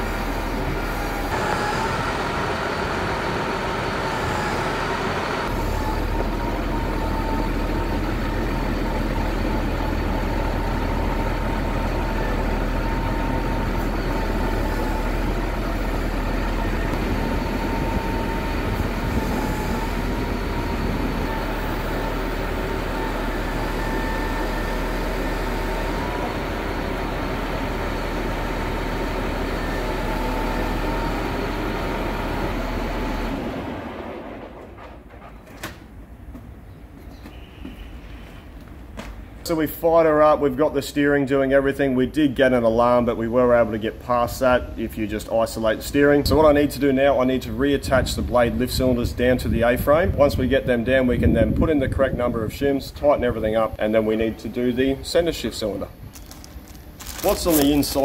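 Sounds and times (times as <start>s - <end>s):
diesel engine running: 0.0s - 35.0s, 54.0s - 58.0s.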